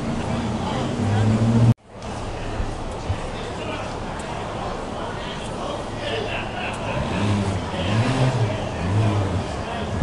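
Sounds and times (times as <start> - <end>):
car engine revving: 0.0 - 1.8, 6.8 - 10.0.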